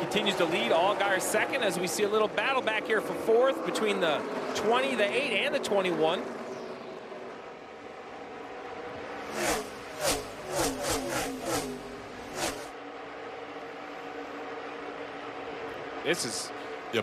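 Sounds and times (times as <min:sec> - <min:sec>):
race car engines droning: 0:00.0 - 0:17.0
race cars passing close by: 0:00.0 - 0:17.0.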